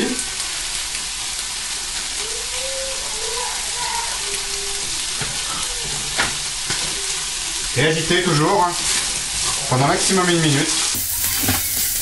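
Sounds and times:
leaves sizzling in a frying pan: 0:00.0 - 0:12.0.

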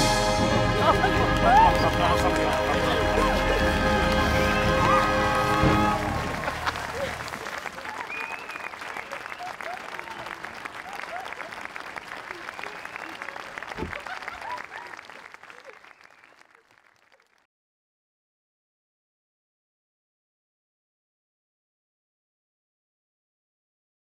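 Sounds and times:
audience applauding: 0:00.0 - 0:17.5
cheers and whoops: 0:00.8 - 0:16.3.

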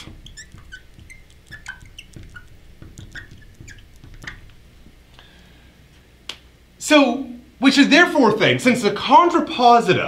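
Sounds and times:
marker squeaking on glass: 0:00.0 - 0:04.9.

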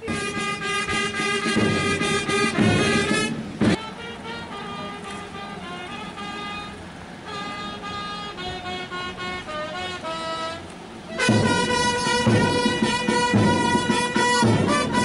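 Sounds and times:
brass band playing slow tune: 0:00.0 - 0:15.0.

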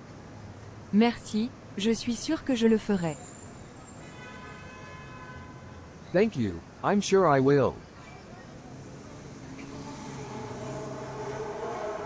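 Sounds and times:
low hum: 0:08.9 - 0:12.0.

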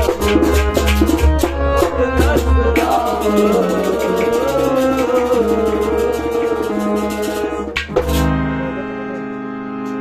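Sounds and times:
percussion beat: 0:00.0 - 0:08.4
harmonium music: 0:00.0 - 0:10.0.

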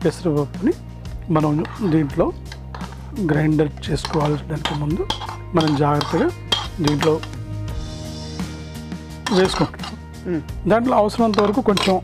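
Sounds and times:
music with sung melody: 0:00.1 - 0:12.0
metal spoon scraping a bowl: 0:01.3 - 0:07.5, 0:09.2 - 0:10.1, 0:10.9 - 0:12.0.

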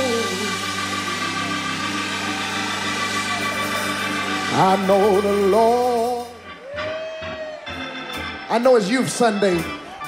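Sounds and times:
keyboard sustained chord: 0:00.0 - 0:06.9.

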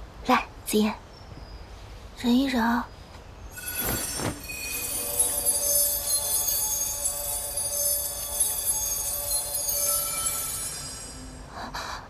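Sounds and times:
shimmering chime-like magic tones: 0:03.5 - 0:11.8.

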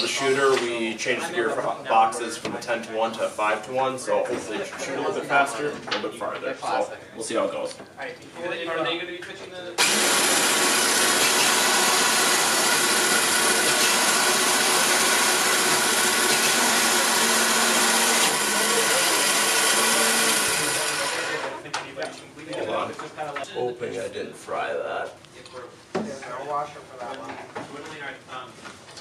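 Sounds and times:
electric motors whirring: 0:09.8 - 0:21.6.

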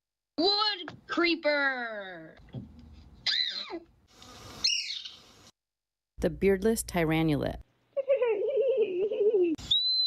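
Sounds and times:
high down-slurring bird calls: 0:04.6 - 0:05.4.

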